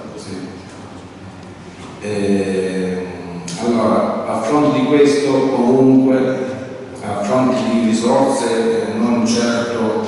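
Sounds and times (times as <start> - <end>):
man talking: 0.0 - 0.6, 2.0 - 10.0
low room noise: 0.0 - 10.0.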